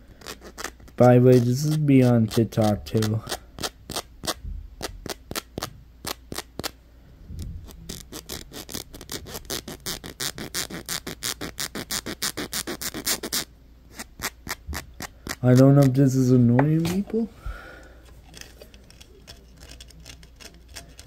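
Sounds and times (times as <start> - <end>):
fingers scratching velcro: 0.1 - 6.8, 7.6 - 16.0, 18.2 - 21.0.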